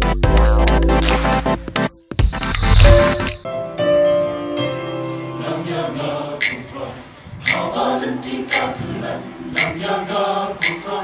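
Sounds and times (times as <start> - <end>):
mixed choir singing church song: 5.2 - 11.0.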